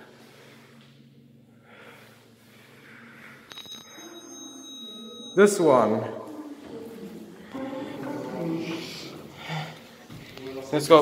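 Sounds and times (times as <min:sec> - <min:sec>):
high bell-like lift chime: 0:03.5 - 0:06.3.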